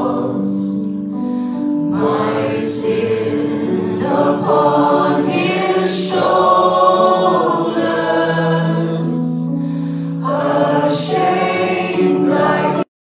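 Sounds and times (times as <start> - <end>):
voices singing: 0.0 - 0.9, 1.9 - 9.6, 10.2 - 12.9
sustained keyboard chords: 0.0 - 12.9.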